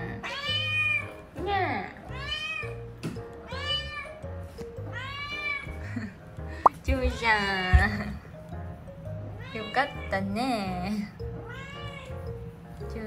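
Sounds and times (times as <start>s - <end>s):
kitten meowing: 0.1s - 1.2s, 3.5s - 4.2s, 4.9s - 5.7s, 11.4s - 12.2s.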